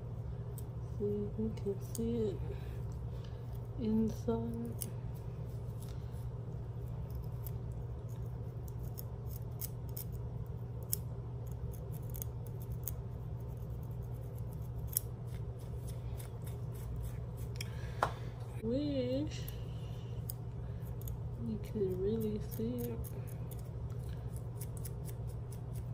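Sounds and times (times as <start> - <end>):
low hum: 0.0 - 25.9
scratching scalp: 0.2 - 17.8, 18.6 - 25.9.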